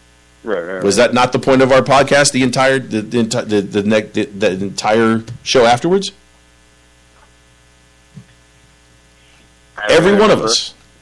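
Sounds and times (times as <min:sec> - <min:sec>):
electrical mains hum: 0:00.0 - 0:11.0
man talking: 0:00.5 - 0:06.2, 0:09.8 - 0:10.8.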